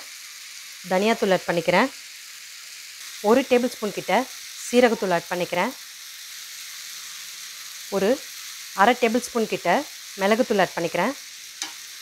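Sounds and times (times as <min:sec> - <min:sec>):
onion and tomato sizzling in a pan: 0:00.0 - 0:12.0.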